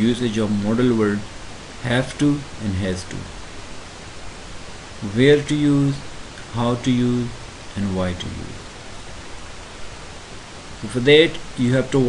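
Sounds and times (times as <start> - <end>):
narrator speaking: 0.0 - 3.3, 5.0 - 8.6, 10.8 - 12.0
recording hiss: 0.0 - 12.0.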